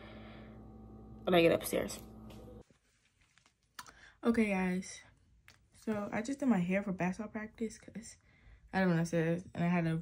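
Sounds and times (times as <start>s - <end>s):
steady low hum: 0.0s - 2.6s.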